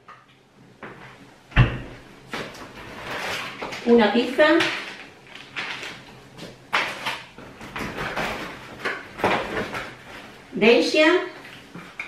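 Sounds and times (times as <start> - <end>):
door swinging shut with thump: 1.6 - 1.9.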